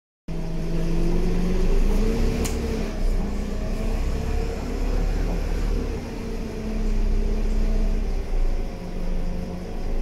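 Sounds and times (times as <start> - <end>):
bus diesel engine drone: 0.3 - 10.0.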